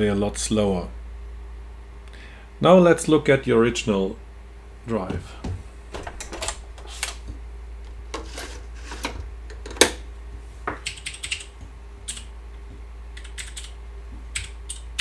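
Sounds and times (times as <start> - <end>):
low steady hum: 0.0 - 15.0
keyboard typing: 10.8 - 11.5, 12.1 - 12.3, 13.2 - 15.0.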